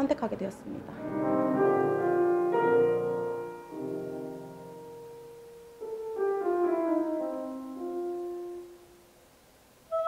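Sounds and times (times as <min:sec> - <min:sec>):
grand piano solo: 0:00.6 - 0:09.1.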